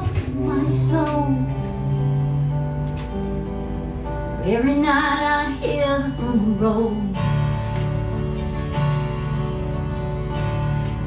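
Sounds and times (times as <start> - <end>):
person singing: 0.0 - 1.7
acoustic guitars strumming: 0.0 - 11.0.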